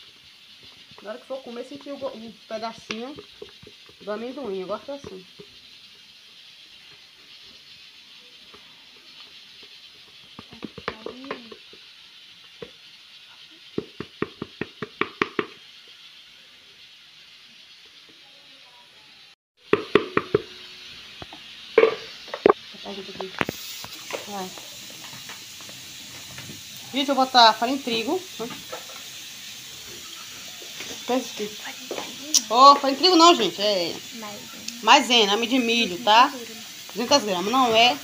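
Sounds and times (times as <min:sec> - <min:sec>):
pressure cooker hissing: 0:00.0 - 0:38.0.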